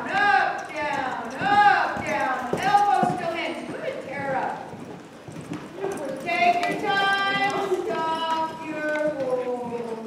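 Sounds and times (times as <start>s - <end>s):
horse hooves clip-clopping: 0.0s - 10.0s.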